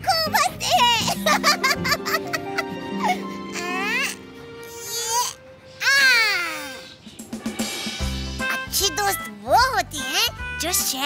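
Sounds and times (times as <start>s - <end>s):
background music held note: 1.0s - 8.7s
voice-like pitch glides: 1.2s - 5.4s.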